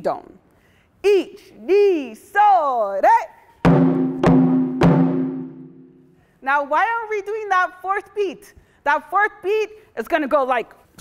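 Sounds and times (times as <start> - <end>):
barrel drum booming strikes: 3.7 - 5.9.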